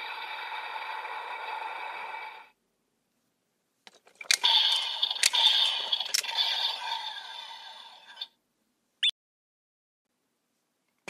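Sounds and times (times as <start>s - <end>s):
plastic clicks: 3.9s - 6.3s.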